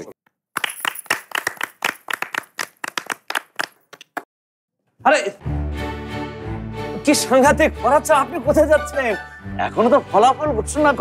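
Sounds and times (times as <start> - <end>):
audience clapping: 0.5 - 4.3.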